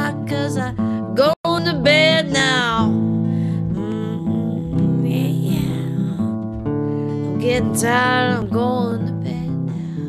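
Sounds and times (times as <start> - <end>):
guitar strumming: 0.0 - 10.0
person singing softly: 3.6 - 6.3, 7.2 - 10.0.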